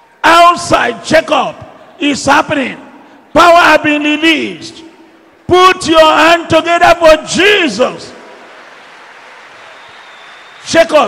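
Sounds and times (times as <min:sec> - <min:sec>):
congregation clapping: 0:08.1 - 0:11.0.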